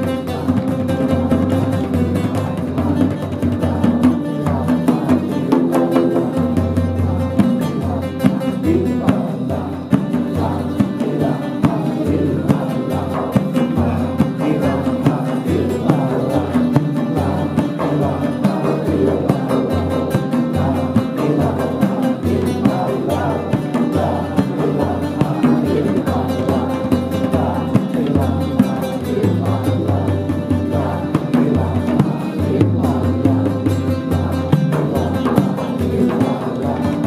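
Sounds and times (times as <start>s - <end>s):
acoustic guitar strumming: 0.0s - 37.0s
frame drum beating: 0.0s - 37.0s
voices singing: 0.0s - 37.0s.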